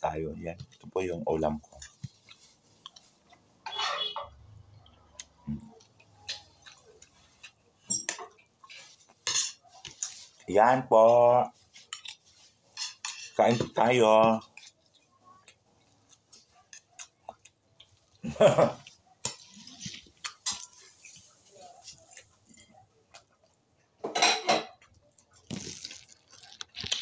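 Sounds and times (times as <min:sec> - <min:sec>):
spoon and fork scraping a plate: 0:03.6 - 0:04.4, 0:11.8 - 0:13.6
cutlery clinking on plate: 0:07.8 - 0:08.5, 0:09.2 - 0:10.2, 0:24.0 - 0:24.9.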